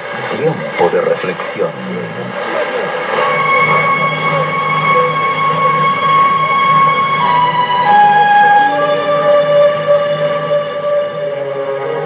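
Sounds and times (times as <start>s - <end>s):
slow instrumental music on radio: 0.7s - 12.0s.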